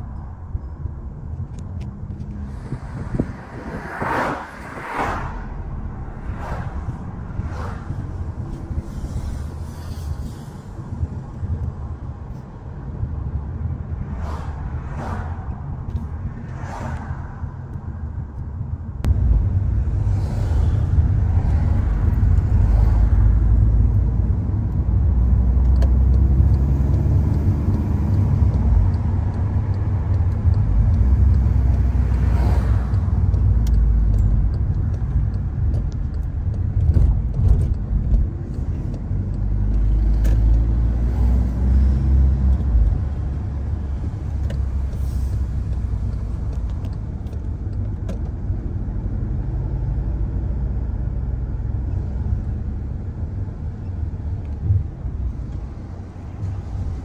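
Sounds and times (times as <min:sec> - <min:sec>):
car driving rumble: 0:00.0 - 0:57.0.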